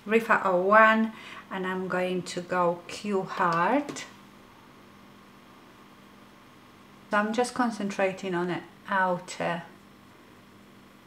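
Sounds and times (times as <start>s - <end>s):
faint hum: 0.0s - 11.0s
steady low hiss: 0.0s - 11.0s.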